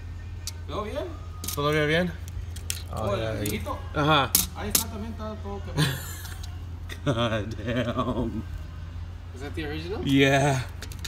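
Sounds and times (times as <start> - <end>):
steady low hum: 0.0 - 11.0
men talking: 2.8 - 8.5, 9.3 - 10.8.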